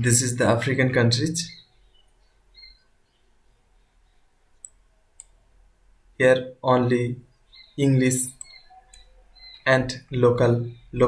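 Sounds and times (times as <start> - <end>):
computer mouse click: 4.6 - 5.4, 8.3 - 9.1.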